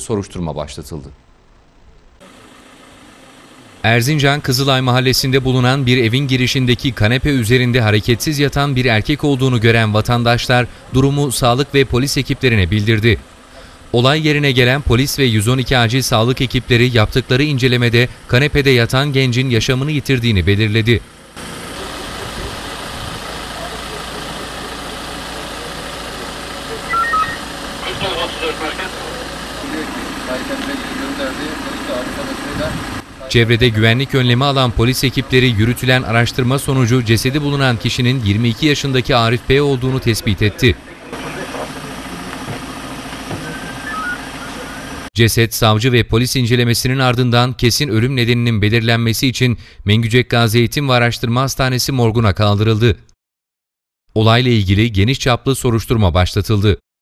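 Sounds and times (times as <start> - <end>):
people talking: 0.0 - 1.2, 3.8 - 13.2, 14.0 - 21.0, 21.6 - 42.7, 43.3 - 53.0, 54.2 - 56.8
vehicle engine idling: 1.2 - 45.1
man speaking loudly: 3.8 - 13.2, 14.0 - 21.0, 27.8 - 42.0
short high beeps: 26.8 - 27.5
outdoor background noise: 39.6 - 45.1.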